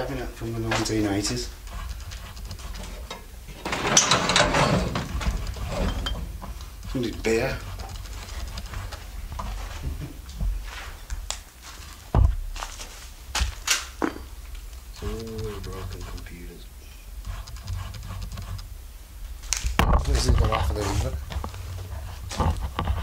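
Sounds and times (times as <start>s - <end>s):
clicks and knocks: 2.0s - 7.0s
footsteps on debris: 7.6s - 14.3s
low voices murmuring: 14.9s - 16.8s.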